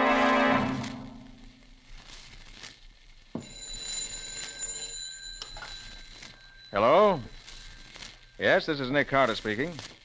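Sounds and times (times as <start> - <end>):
telephone bell ringing: 3.4 - 8.6.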